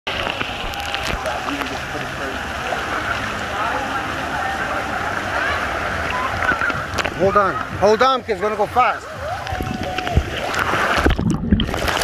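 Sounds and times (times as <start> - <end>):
faint voices of swimmers: 0.1 - 11.0
water sloshing and lapping: 0.1 - 12.0.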